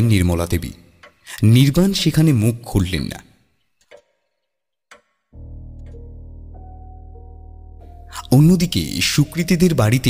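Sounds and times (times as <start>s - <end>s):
narrator speaking: 0.0s - 3.4s, 8.0s - 10.0s.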